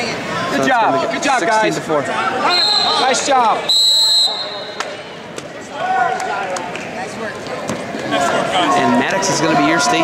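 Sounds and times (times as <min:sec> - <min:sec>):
arena background noise: 0:00.0 - 0:10.0
referee whistle blast: 0:02.4 - 0:03.1, 0:03.7 - 0:04.8.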